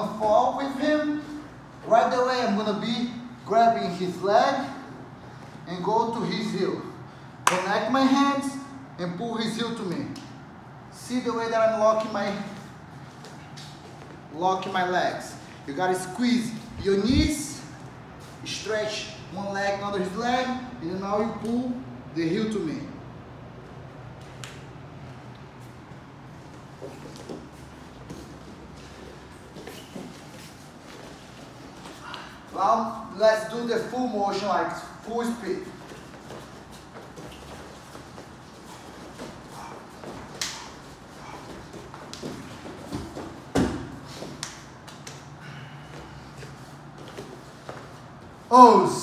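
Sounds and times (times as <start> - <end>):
bare feet slapping on a mat: 35.7 - 48.4
bodies thudding onto a mat: 42.3 - 44.4.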